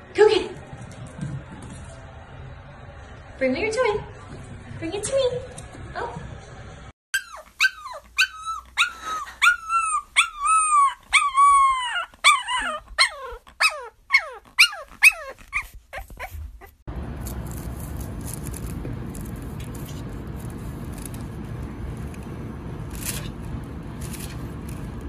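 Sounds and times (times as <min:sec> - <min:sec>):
puppy howling: 0:07.2 - 0:16.3.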